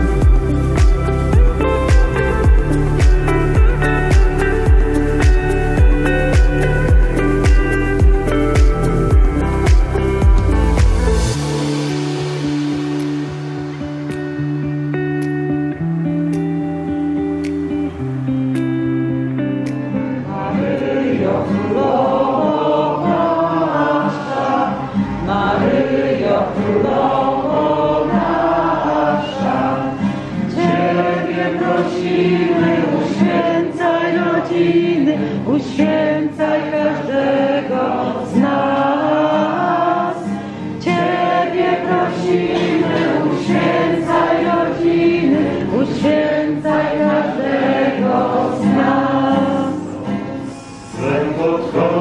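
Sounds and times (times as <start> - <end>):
group singing a religious song: 0.0 - 8.1, 20.1 - 52.0
strummed acoustic guitar: 0.0 - 52.0.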